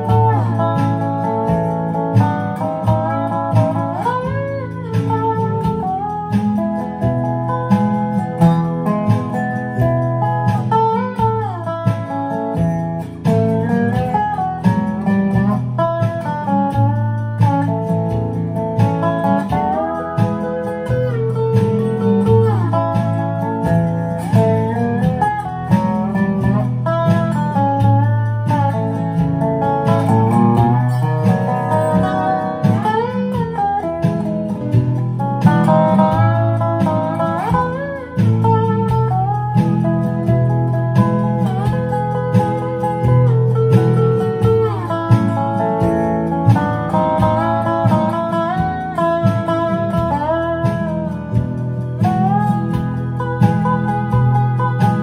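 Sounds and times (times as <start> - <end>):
backing rhythm track: 0.0 - 55.0
slide resonator guitar melody: 0.0 - 55.0.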